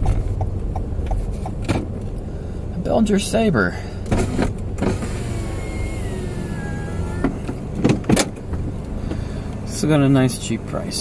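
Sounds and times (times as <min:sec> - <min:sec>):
car engine idling: 0:00.0 - 0:11.0
power window motor whining: 0:04.1 - 0:08.0.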